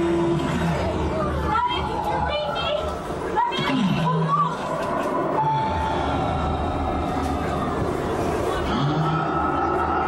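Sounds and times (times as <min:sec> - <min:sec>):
steady low rumble: 0:04.0 - 0:10.0.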